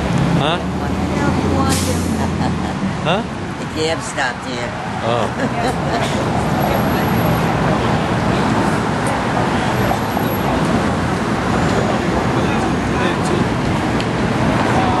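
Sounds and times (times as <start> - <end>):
pedestrians' voices: 0.0 - 15.0
traffic noise: 0.0 - 15.0.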